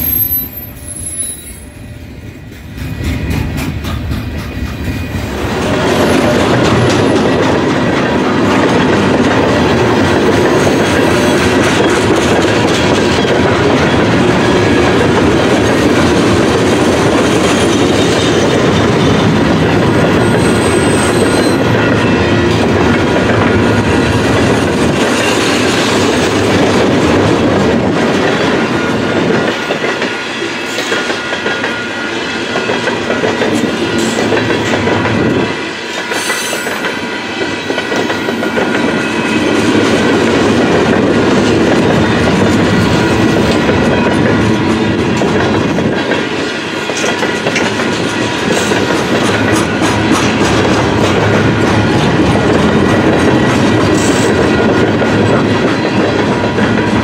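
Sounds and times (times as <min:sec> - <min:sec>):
train wheels rolling on rails: 0:00.0 - 0:57.0.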